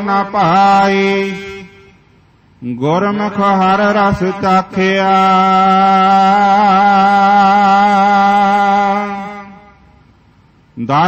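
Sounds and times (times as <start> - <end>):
man chanting: 0.0 - 2.0, 2.6 - 9.8, 10.8 - 11.0.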